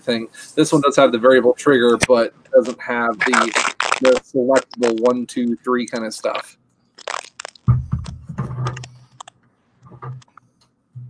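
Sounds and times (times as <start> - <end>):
handling knocks and rustling: 7.6 - 9.2.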